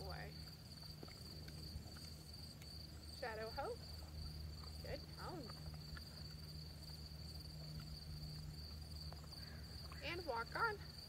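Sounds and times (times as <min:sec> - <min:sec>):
crickets chirping: 0:00.0 - 0:11.0
low steady hum: 0:00.0 - 0:11.0.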